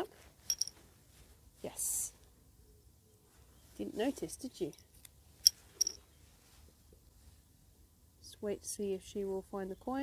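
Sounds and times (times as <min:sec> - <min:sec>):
coin set down on concrete: 0:00.5 - 0:00.8, 0:05.4 - 0:06.0.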